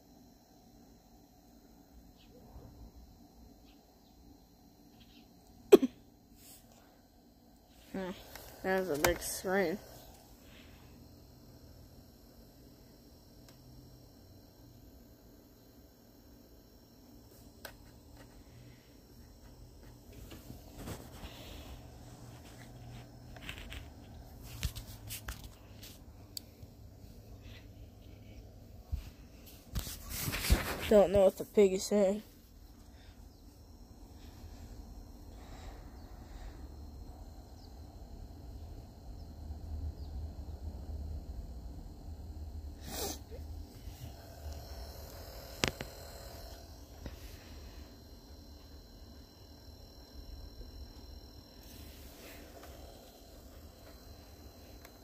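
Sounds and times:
faint low hum: 0.0 - 55.0.

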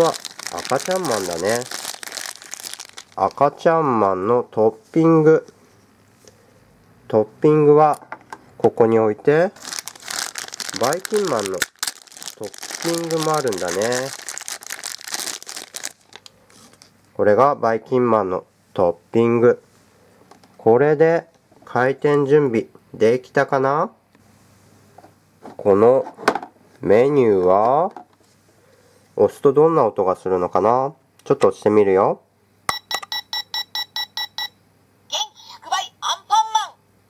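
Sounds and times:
plastic bag crinkling: 0.0 - 3.6, 9.6 - 16.9.

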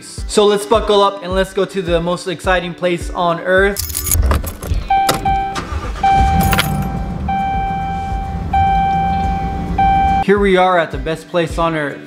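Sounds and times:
car key turning in ignition: 3.8 - 7.9
low vehicle rumble: 4.7 - 10.2
steady electronic tone: 4.8 - 10.2.

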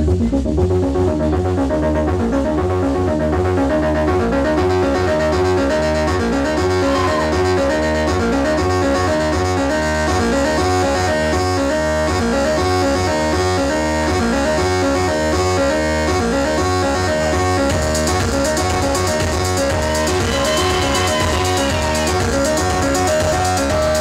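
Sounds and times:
deep synth bass: 0.0 - 24.0
pitched synth tones: 0.0 - 24.0.

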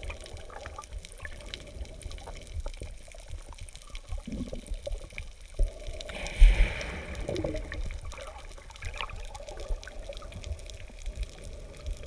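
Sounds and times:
faint steady hum: 0.0 - 12.0
underwater bubbles fizzing: 0.0 - 12.0
water churning rumble: 6.1 - 8.7.

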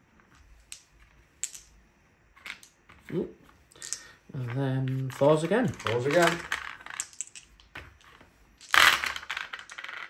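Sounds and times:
dice clattering in wooden tray: 0.3 - 1.8, 2.4 - 10.0
faint dice clicks: 2.4 - 8.8.

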